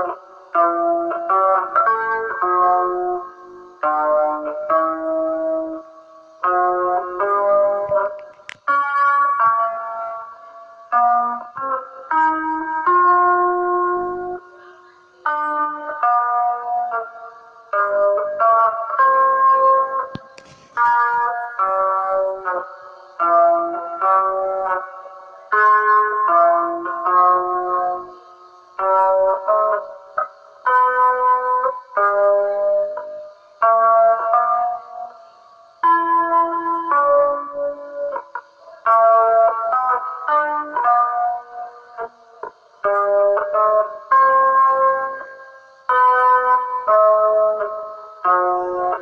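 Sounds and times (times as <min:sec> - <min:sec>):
guitar playing ringing single notes: 0:00.0 - 0:49.0.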